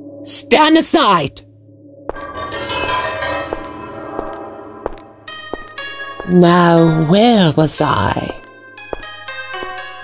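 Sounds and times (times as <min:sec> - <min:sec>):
bell-like tone ringing: 0:02.2 - 0:07.2.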